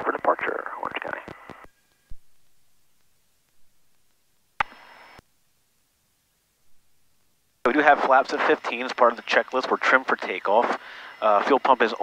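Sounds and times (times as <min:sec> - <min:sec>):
pilot speaking over radio: 0:00.0 - 0:01.3, 0:07.7 - 0:12.0.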